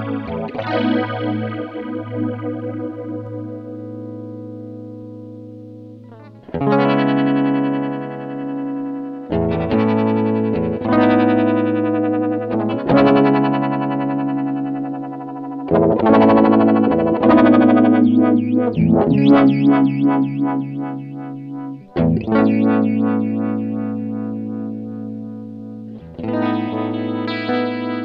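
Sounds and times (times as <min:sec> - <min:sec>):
electric guitar chords with flanger: 0:00.0 - 0:28.0.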